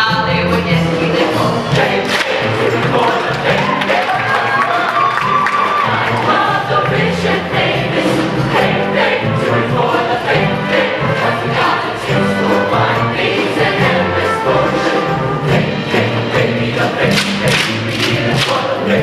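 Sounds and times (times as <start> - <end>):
choir singing: 0.6 - 19.0.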